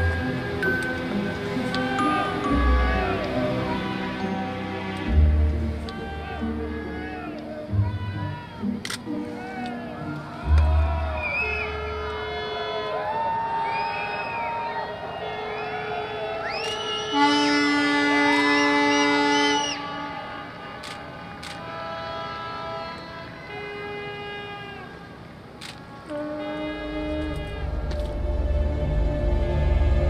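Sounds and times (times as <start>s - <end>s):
boat horns blasting: 0.0s - 8.1s, 10.8s - 13.0s, 15.3s - 28.5s.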